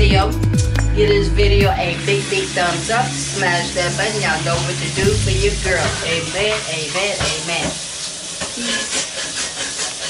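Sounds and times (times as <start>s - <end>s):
woman speaking: 0.0s - 7.8s
food sizzling in frying pan: 1.8s - 10.0s.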